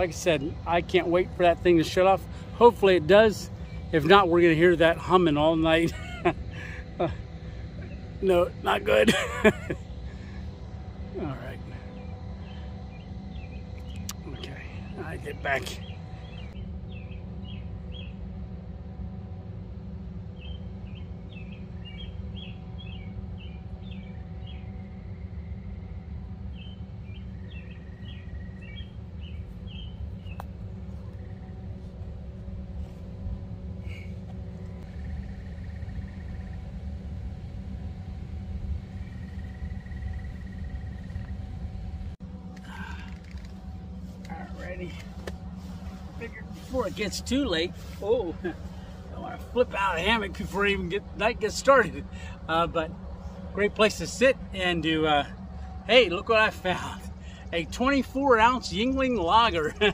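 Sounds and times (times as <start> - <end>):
faint steady tones: 0.0 - 59.9
machine humming low: 0.0 - 59.9.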